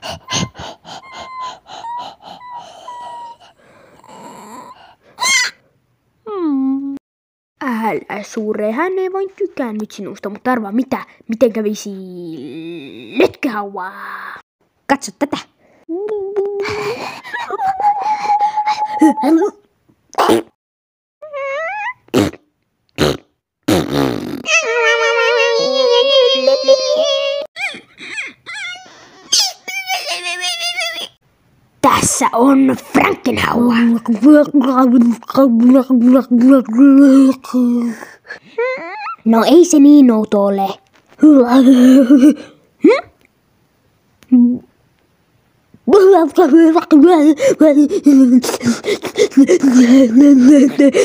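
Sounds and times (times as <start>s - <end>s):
person imitating dog panting: 0.0s - 5.3s, 47.1s - 51.0s
voiced groan: 2.8s - 5.0s.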